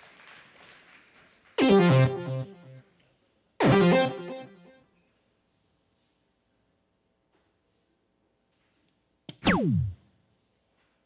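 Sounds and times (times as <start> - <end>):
electronic falling tone: 9.4 - 10.0.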